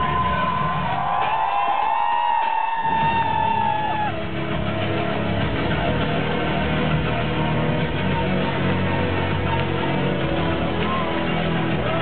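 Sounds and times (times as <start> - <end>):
audience cheering: 0.0 - 4.8, 10.5 - 12.0
loud live music: 0.0 - 12.0.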